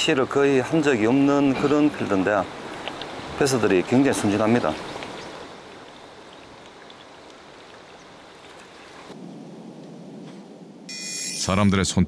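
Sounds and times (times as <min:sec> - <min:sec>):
lure churning water: 0:01.2 - 0:09.1.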